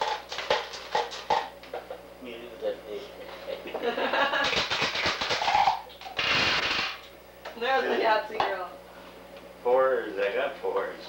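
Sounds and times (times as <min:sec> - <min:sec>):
voices and laughter: 0:03.3 - 0:04.5.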